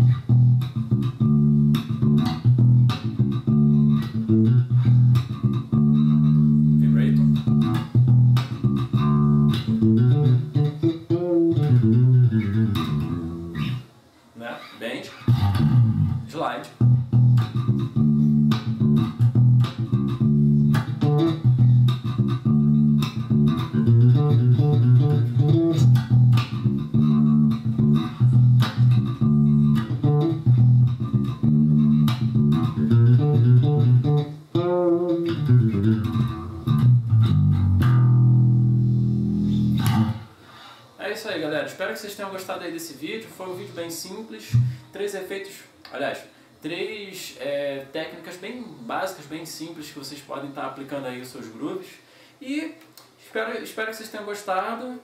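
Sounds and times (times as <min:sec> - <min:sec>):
electric bass played fingerstyle: 0:00.0 - 0:13.9, 0:15.2 - 0:40.4, 0:44.4 - 0:44.9.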